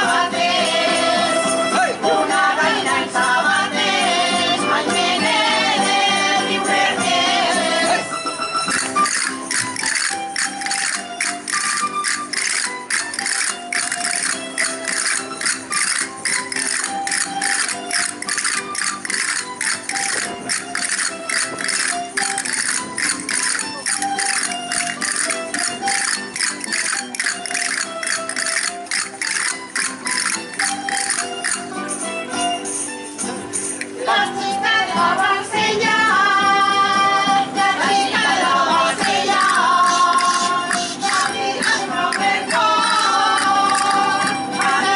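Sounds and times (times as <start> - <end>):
folk dance melody: 0.0 - 44.9
fast percussive beat: 7.8 - 32.5, 38.6 - 44.9.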